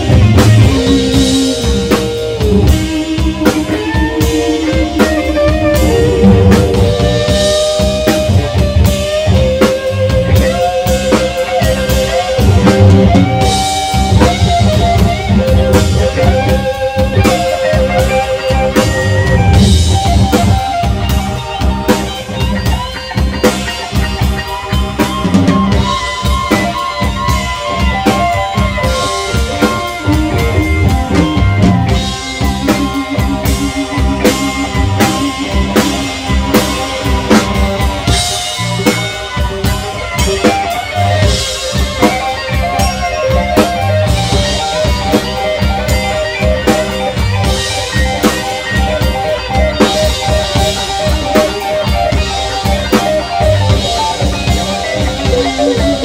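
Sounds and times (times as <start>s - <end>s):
drum kit beat: 0.0s - 56.0s
electric bass: 0.0s - 56.0s
electric guitars: 0.0s - 56.0s
keyboard: 0.0s - 56.0s.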